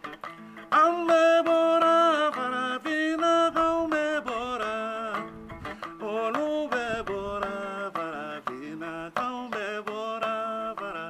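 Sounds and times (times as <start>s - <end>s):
plucked lute: 0.0s - 11.0s.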